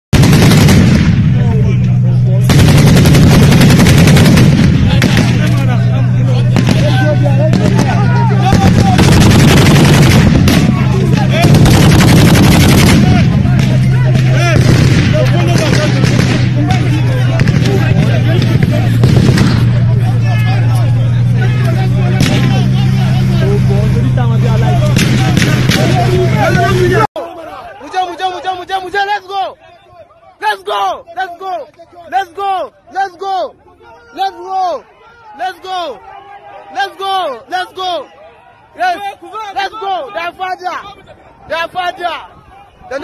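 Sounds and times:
automatic weapons firing: 0:00.2 - 0:01.4, 0:02.4 - 0:05.8, 0:06.5 - 0:19.8, 0:24.9 - 0:26.3
low engine hum: 0:00.5 - 0:27.1
men talking: 0:01.2 - 0:43.0
men shouting: 0:04.9 - 0:43.0.

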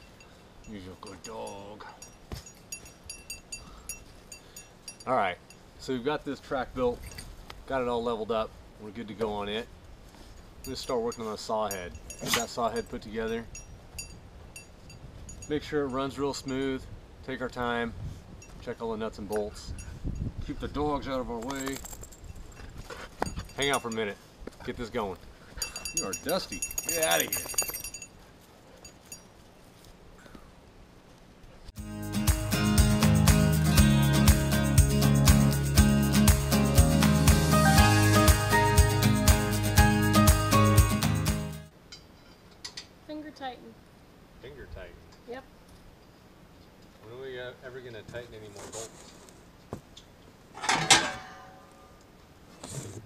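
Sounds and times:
dog collar tags jingling: 0:00.0 - 0:05.7, 0:10.6 - 0:16.7, 0:21.3 - 0:24.2, 0:25.5 - 0:29.5.

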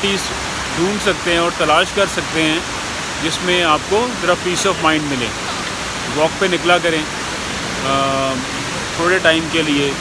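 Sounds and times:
rush of falling water: 0:00.0 - 0:10.0.

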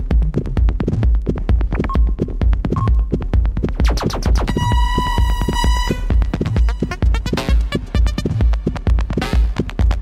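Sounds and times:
techno kick drum: 0:00.0 - 0:10.0.

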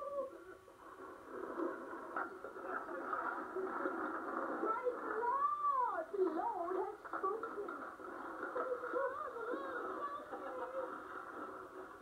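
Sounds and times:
muffled voices through television: 0:00.0 - 0:12.0.

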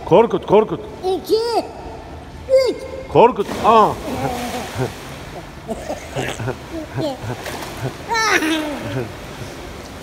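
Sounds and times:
pool water splashing: 0:00.0 - 0:10.0
high-pitched vocal cry: 0:08.1 - 0:09.1.

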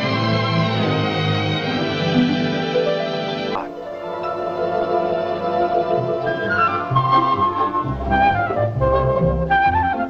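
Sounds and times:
flute melody: 0:00.0 - 0:10.0
orchestral bass notes: 0:00.0 - 0:10.0.

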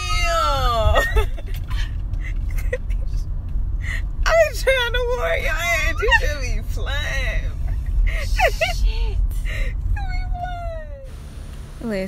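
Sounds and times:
low rumble: 0:00.0 - 0:12.0
woman's laughing squeal: 0:00.6 - 0:03.0, 0:05.8 - 0:06.3
woman speaking: 0:04.3 - 0:07.6.

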